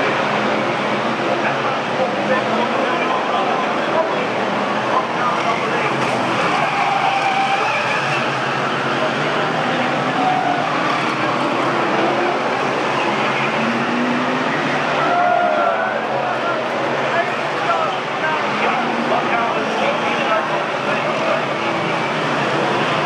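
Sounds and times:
race car engines revving: 0:00.0 - 0:23.0
voices: 0:00.0 - 0:23.0.

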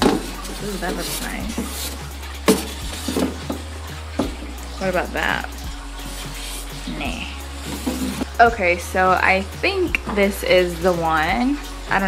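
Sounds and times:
branch knocking on plastic tub: 0:00.0 - 0:04.5.

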